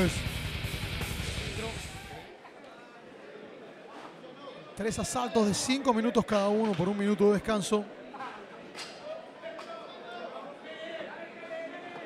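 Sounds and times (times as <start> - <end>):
bass music: 0.0 - 2.2.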